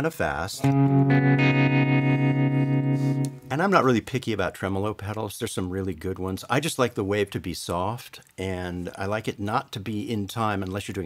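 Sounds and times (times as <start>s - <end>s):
electric guitar chord with tremolo: 0.6s - 3.4s.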